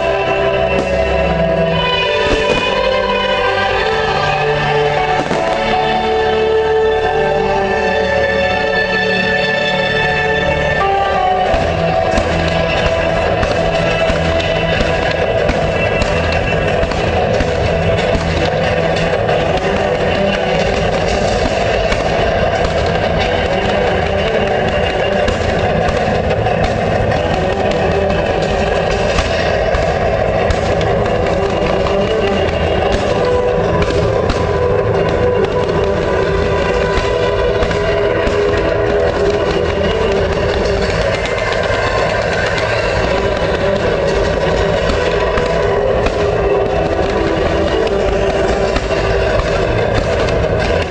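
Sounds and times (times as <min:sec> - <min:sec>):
fireworks crackling and popping: 0:00.0 - 0:50.9
loud music playing: 0:00.0 - 0:50.9.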